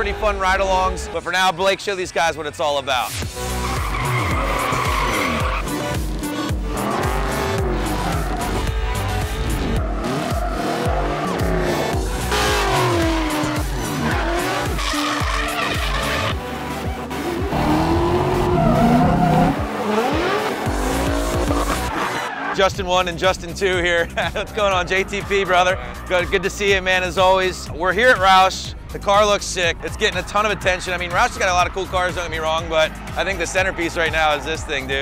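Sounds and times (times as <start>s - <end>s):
music track: 2.9s - 35.0s
car engines revving: 3.2s - 22.7s, 28.1s - 35.0s
tyres squealing and skidding: 3.2s - 22.7s, 29.7s - 35.0s.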